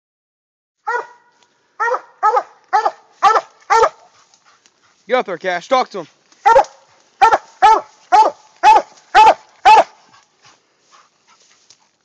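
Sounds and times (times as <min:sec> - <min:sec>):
dog barking: 0:00.8 - 0:04.1, 0:06.4 - 0:10.0.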